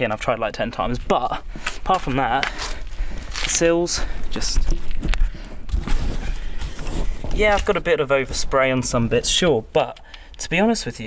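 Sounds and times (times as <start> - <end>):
camera handling rumble: 4.6 - 7.8
knocks and rustles: 4.6 - 8.0.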